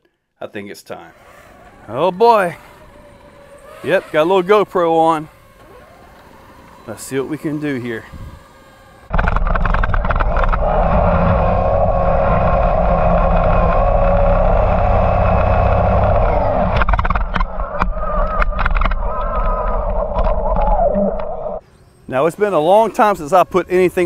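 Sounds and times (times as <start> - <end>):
toy truck motor whine: 1.1 - 24.0
low rumble: 9.1 - 21.6.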